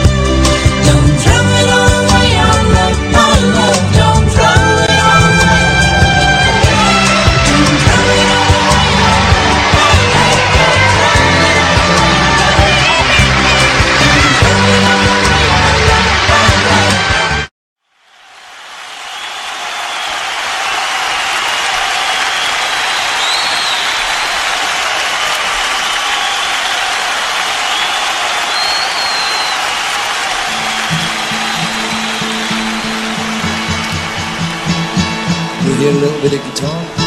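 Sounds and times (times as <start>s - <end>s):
audience applause: 5.6s - 36.4s
acoustic guitar playing softly: 30.5s - 37.0s.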